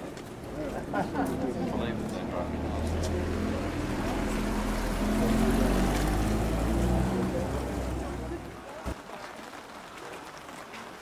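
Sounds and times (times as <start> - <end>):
engine humming: 1.2 - 8.6.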